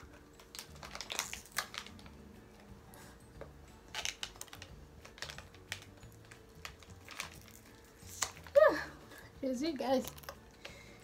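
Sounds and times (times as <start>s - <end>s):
plastic packet crinkling: 0.0s - 2.3s, 3.8s - 8.7s.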